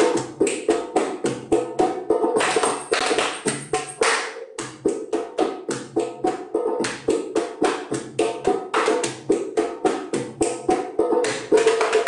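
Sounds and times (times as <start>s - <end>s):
body percussion pats and slaps: 0.0s - 1.4s, 2.4s - 12.0s.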